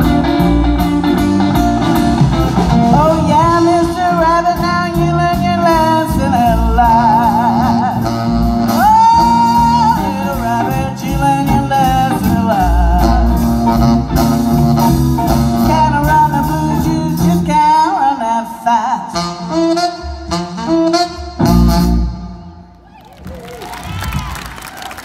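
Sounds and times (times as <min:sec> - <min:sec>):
live blues band playing: 0:00.0 - 0:22.7
audience clapping: 0:22.7 - 0:25.0.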